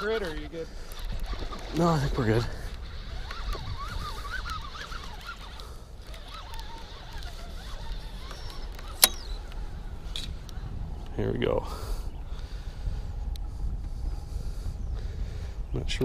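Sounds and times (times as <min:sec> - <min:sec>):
faint bird calls: 0:00.0 - 0:12.8.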